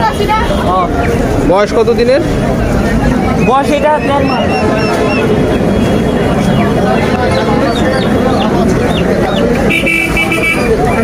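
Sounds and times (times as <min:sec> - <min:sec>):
steady traffic rumble: 0:00.0 - 0:11.0
young chickens calling: 0:03.4 - 0:11.0.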